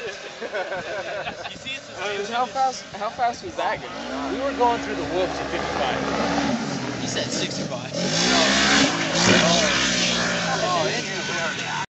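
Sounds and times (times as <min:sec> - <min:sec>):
off-road vehicle engine running: 0:01.6 - 0:11.9.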